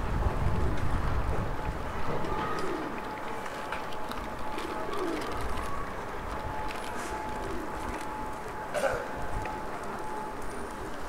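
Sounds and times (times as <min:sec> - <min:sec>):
wind rumble on microphone: 0:00.0 - 0:08.3
pigeons cooing: 0:02.1 - 0:03.4, 0:04.4 - 0:05.8, 0:07.0 - 0:07.9.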